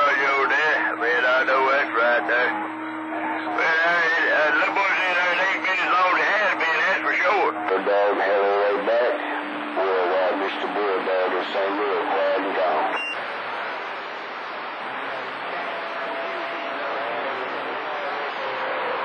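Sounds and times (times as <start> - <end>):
man's voice over radio: 0.0 - 2.6, 3.5 - 13.0
radio static: 0.0 - 19.0.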